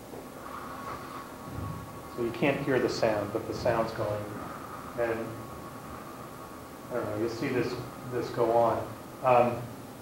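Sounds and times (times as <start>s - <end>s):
low rumble: 0.4s - 9.2s.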